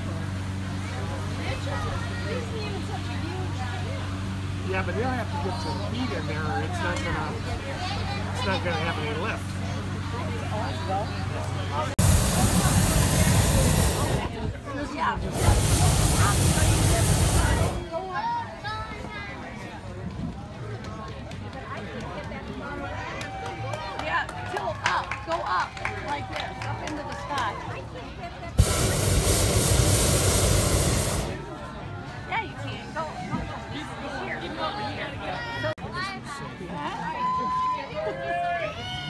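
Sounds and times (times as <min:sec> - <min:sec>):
propane burner firing: 0:12.0 - 0:14.4, 0:15.2 - 0:17.9, 0:28.6 - 0:31.5.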